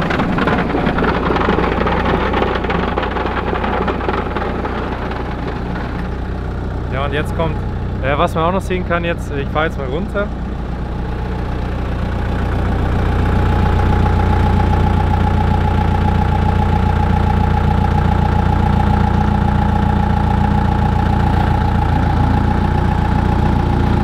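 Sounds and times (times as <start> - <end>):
diesel engine running: 0.0 - 24.0.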